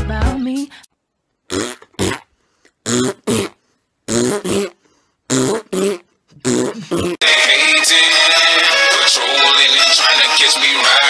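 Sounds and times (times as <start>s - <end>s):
person making throaty vocal sounds: 2.8s - 7.4s.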